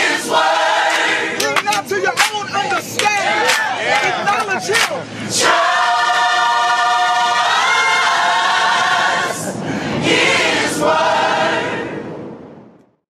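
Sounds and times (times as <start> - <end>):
gospel choir singing: 0.0 - 12.4.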